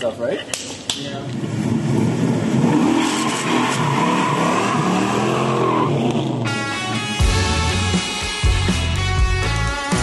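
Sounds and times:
car engine accelerating: 0:01.4 - 0:09.0
music: 0:06.5 - 0:10.0.

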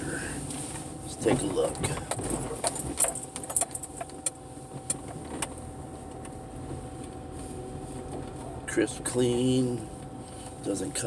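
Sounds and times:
low car cabin hum: 0:00.0 - 0:11.0
light clicks and jangling rattles: 0:01.2 - 0:04.4.

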